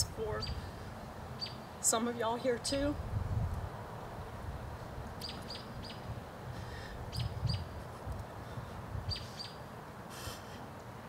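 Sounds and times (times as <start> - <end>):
steady low rumble: 0.0 - 10.6
small bird chirping: 0.3 - 0.6, 1.4 - 1.6, 5.2 - 6.1, 7.1 - 7.7, 9.1 - 9.6.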